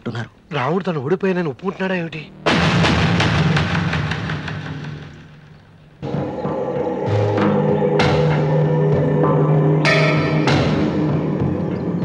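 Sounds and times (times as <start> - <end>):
dramatic percussion hit: 2.4 - 12.0.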